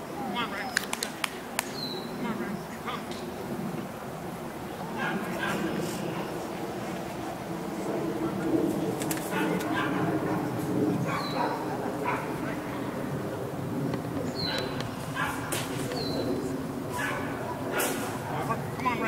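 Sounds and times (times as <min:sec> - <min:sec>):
people talking: 0:00.0 - 0:03.9, 0:04.8 - 0:13.2, 0:14.7 - 0:19.0
dog barking: 0:09.3 - 0:10.1, 0:11.1 - 0:12.3, 0:14.5 - 0:15.6, 0:16.9 - 0:17.9.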